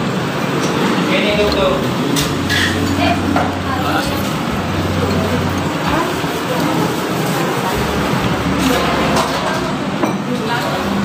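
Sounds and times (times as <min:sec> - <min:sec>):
road traffic rumble: 0:00.0 - 0:11.0.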